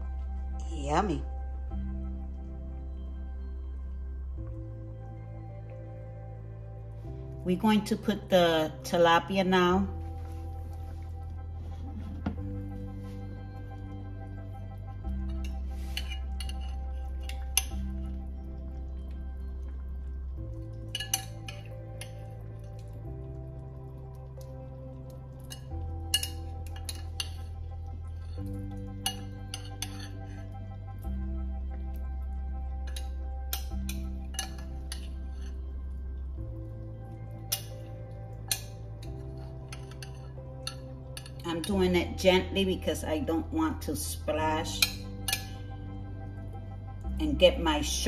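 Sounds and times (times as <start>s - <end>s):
background music with sustained notes: 0.0s - 48.0s
spoon clinking against glass bowl: 15.3s - 17.9s, 20.9s - 22.3s, 25.4s - 27.6s, 29.0s - 30.5s, 32.9s - 35.6s, 38.5s - 41.8s, 44.7s - 45.6s.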